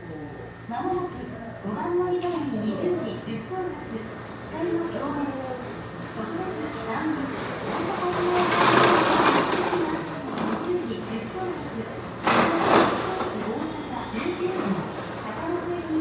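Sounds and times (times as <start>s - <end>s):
indistinct voices: 1.6s - 16.0s.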